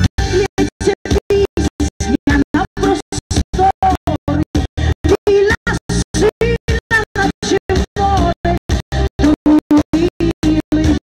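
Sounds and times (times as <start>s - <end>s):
amplified backing music: 0.0s - 11.0s
woman singing into a microphone: 0.3s - 3.0s, 3.6s - 8.6s, 9.2s - 11.0s.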